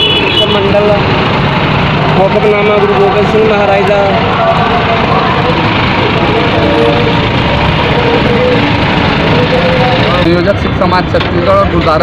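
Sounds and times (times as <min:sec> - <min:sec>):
vehicle noise: 0:00.0 - 0:12.0
voices talking: 0:00.0 - 0:12.0.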